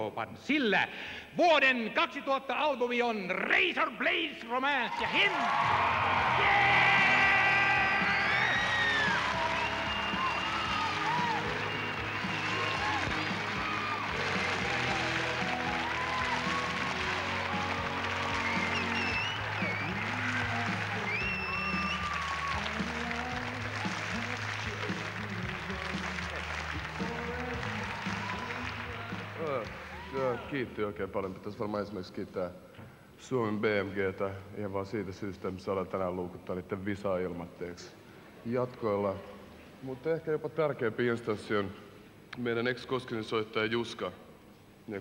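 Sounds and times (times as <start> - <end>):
audience applause: 4.9 - 30.5.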